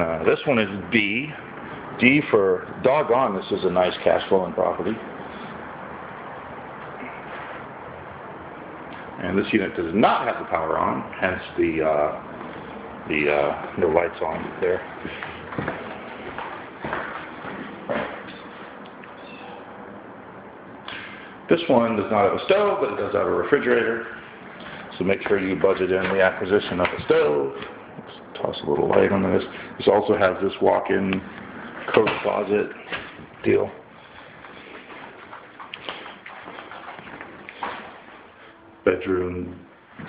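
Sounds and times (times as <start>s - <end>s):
footsteps on tile floor: 13.6s - 18.9s, 23.7s - 29.2s, 34.0s - 38.4s.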